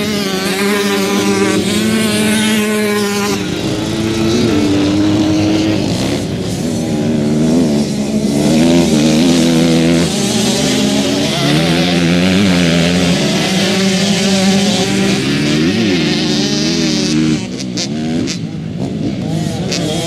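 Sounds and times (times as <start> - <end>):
dirt bike engines revving: 0.0 - 20.0.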